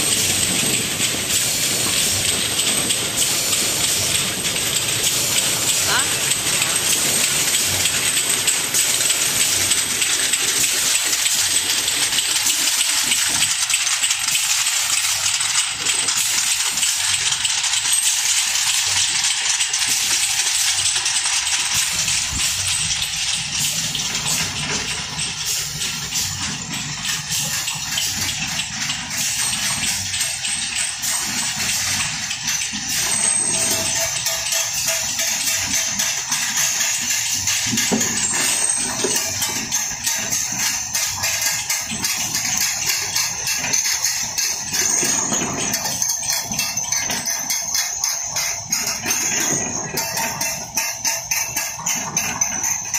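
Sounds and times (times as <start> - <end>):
steady machine hiss: 0.0 - 33.7.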